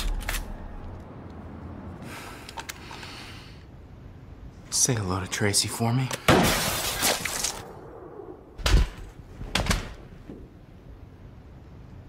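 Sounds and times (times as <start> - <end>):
window glass shattering: 6.4 - 7.6.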